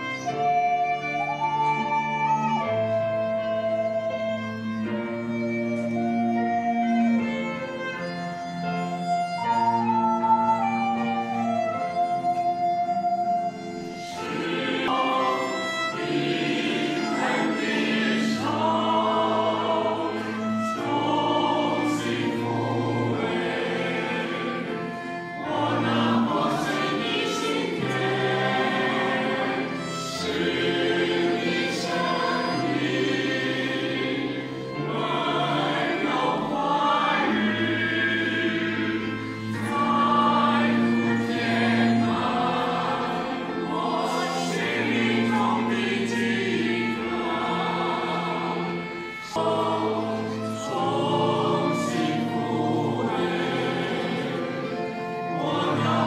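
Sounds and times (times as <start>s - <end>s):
choir singing a hymn: 0.0s - 56.0s
low instrumental accompaniment: 0.0s - 56.0s.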